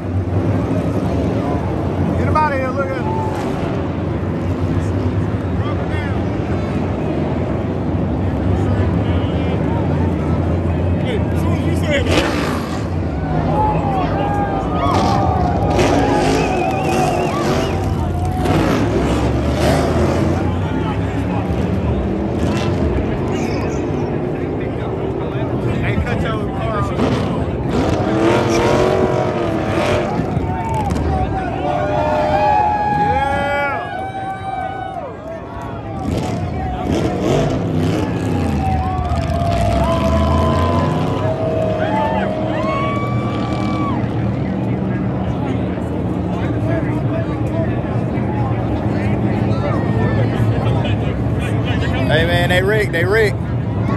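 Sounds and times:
crowd cheering and shouting: 0:00.0 - 0:07.3, 0:08.4 - 0:53.9
race car engines passing: 0:00.0 - 0:53.9.

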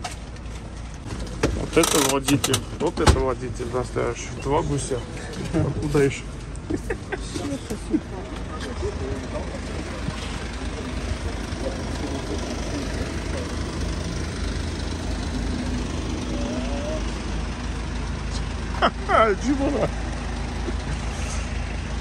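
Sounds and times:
minibus engine idling: 0:00.0 - 0:22.0.

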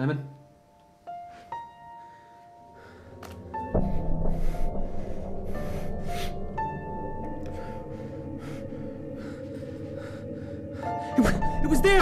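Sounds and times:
man breathing hard: 0:01.2 - 0:11.6
low steady drone: 0:02.7 - 0:12.0.

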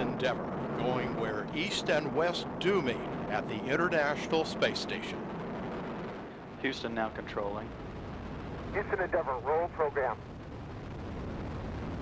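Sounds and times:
rocket launch rumble: 0:00.0 - 0:12.0.

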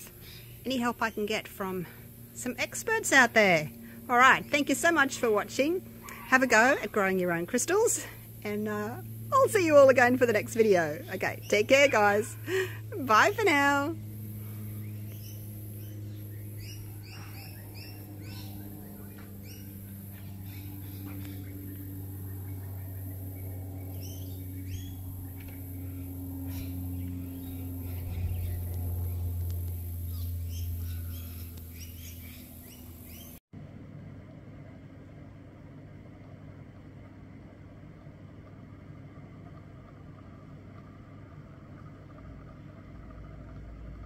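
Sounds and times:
small birds chirping: 0:00.0 - 0:33.4
low hum: 0:00.0 - 0:44.0.

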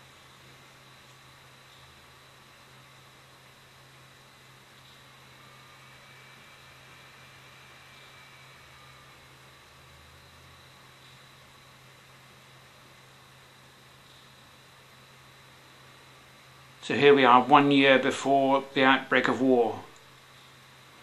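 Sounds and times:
faint steady hiss: 0:00.0 - 0:21.0
low hum: 0:00.0 - 0:21.0.

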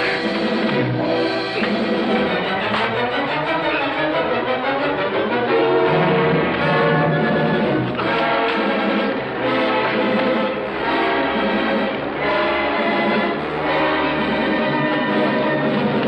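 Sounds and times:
orchestral film score: 0:00.0 - 0:16.0.

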